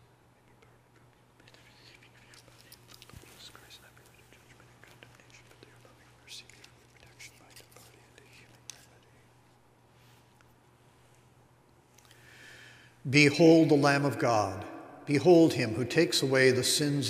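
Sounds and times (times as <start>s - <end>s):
man whispering: 0.0s - 9.4s
steady low hum: 0.0s - 17.0s.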